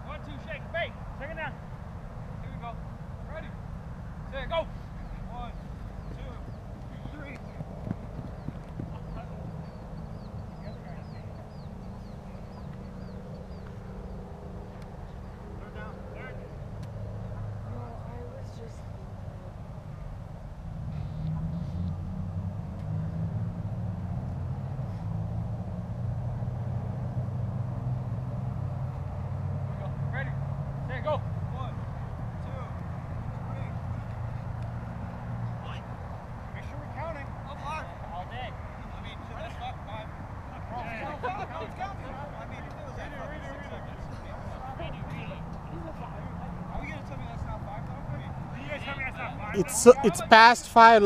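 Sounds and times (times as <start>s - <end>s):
distant voices calling out: 49.5s - 51.0s
distant players shouting: 49.6s - 51.0s.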